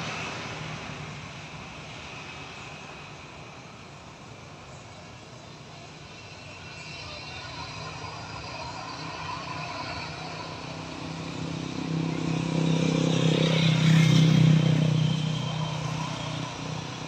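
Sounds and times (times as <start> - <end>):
engine noise: 0.0 - 17.0.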